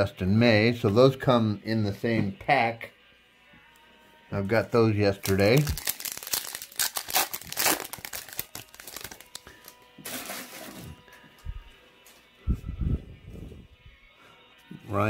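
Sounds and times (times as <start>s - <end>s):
rustling of wrapper and cards: 5.1s - 10.7s
foil wrapper tearing: 5.2s - 10.7s.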